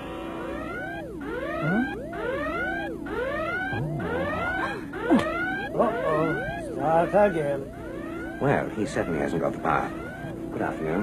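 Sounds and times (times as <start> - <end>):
steady electronic hum: 0.0 - 11.0.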